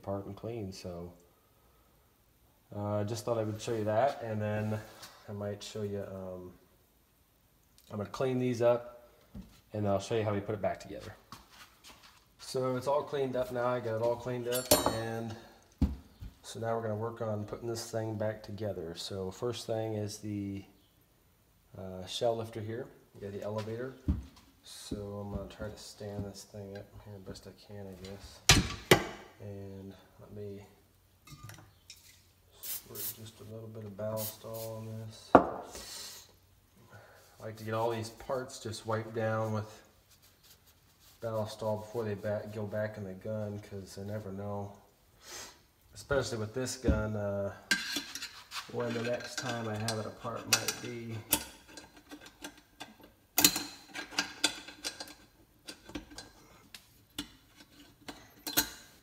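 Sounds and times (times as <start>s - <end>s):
light clinks of steel parts: 14.5s - 15.5s, 57.2s - 58.9s.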